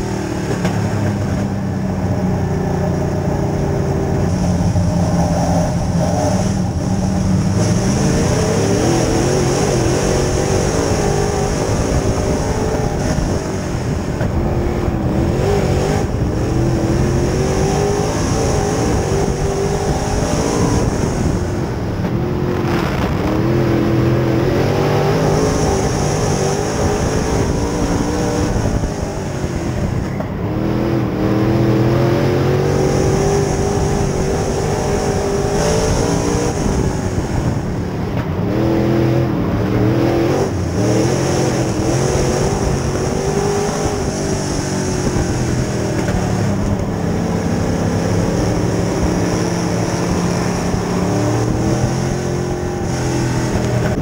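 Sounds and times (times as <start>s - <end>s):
race car engine revving: 0.0s - 54.0s.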